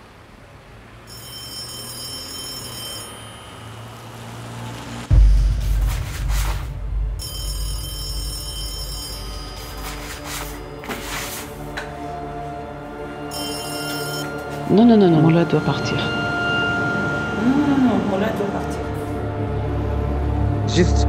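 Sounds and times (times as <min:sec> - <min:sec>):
telephone ringing: 0:01.1 - 0:04.2, 0:07.2 - 0:11.4, 0:13.1 - 0:14.8
low drone: 0:03.7 - 0:21.0
deep bass hit: 0:05.1 - 0:08.7.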